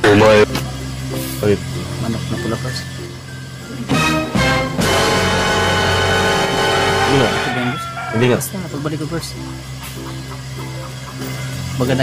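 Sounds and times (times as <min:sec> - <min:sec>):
background music with low drone: 0:00.0 - 0:12.0.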